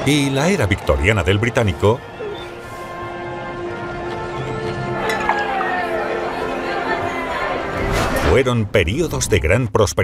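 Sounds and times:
crowd chatter: 0:00.0 - 0:08.3
background music: 0:00.0 - 0:10.0
glasses clinking: 0:05.0 - 0:06.0.

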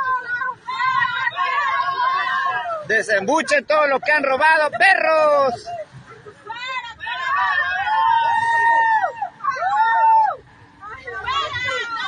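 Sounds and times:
people yelling high-pitched: 0:00.0 - 0:02.9, 0:06.5 - 0:12.0.

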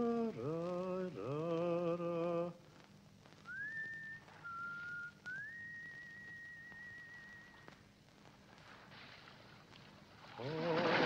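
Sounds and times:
man singing with vibrato: 0:00.0 - 0:02.6
whistled melody: 0:03.5 - 0:07.7.

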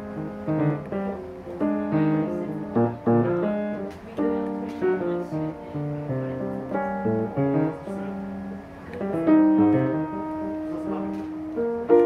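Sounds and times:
jazz piano chords: 0:00.0 - 0:12.0.

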